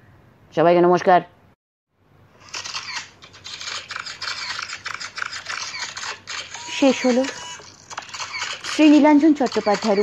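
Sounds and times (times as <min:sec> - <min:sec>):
camera shutters clicking: 0:02.4 - 0:10.0.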